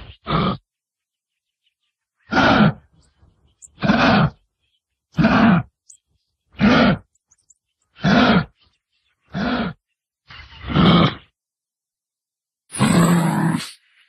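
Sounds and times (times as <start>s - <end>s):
kangaroo grunting: 0.0s - 0.6s, 2.2s - 2.9s, 3.7s - 4.4s, 5.1s - 5.8s, 6.5s - 7.1s, 8.0s - 8.6s, 9.3s - 9.8s, 10.5s - 11.3s, 12.7s - 13.7s.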